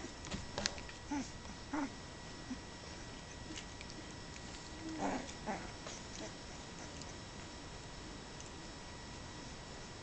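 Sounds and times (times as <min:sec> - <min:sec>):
puppy whining: 0:00.0 - 0:07.4.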